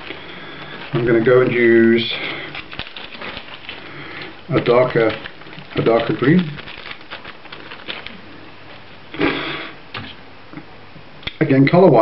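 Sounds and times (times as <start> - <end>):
rustling of materials: 0.0 - 9.4.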